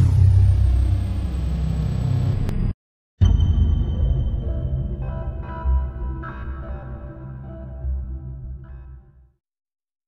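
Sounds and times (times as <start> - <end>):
deep rumble: 0.0 - 6.2.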